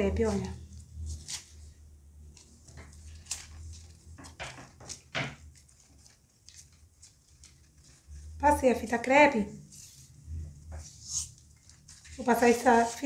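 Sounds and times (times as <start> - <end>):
masking tape crackling and rustling: 0.2 - 9.0, 9.8 - 13.0.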